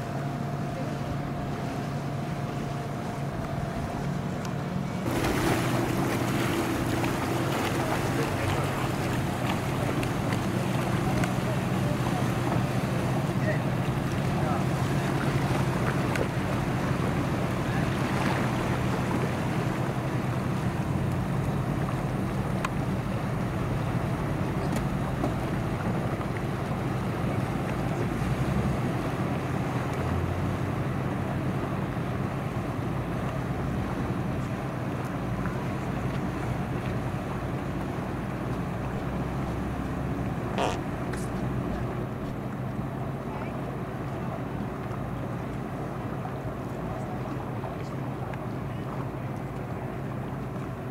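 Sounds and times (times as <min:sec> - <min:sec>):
outboard motor humming: 0:00.0 - 0:50.9
water sounds: 0:00.0 - 0:50.9.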